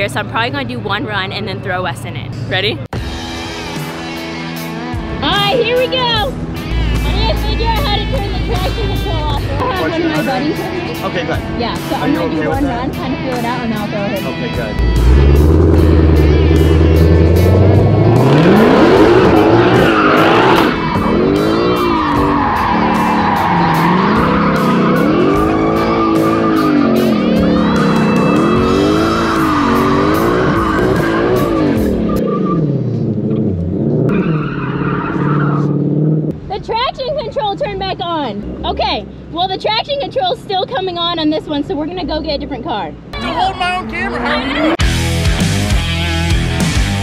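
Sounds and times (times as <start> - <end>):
car engine revving: 3.2 - 40.2.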